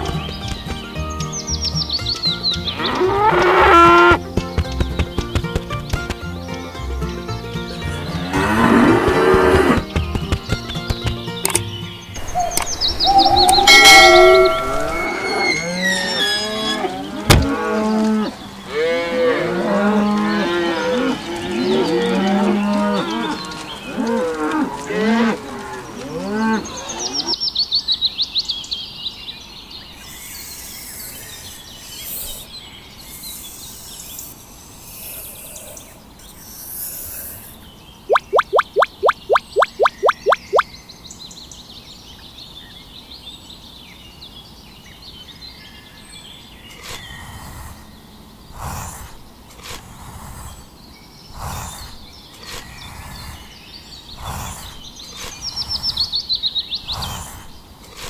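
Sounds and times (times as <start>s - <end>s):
high chirping: 11.5s - 16.6s, 38.1s - 40.7s
sharp pulses: 38.1s - 40.6s.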